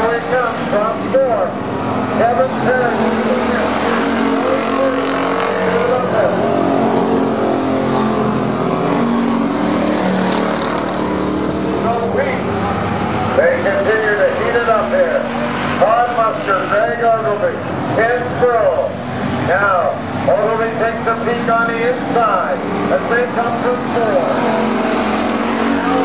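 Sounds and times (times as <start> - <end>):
stock car engines racing: 0.0 - 26.0.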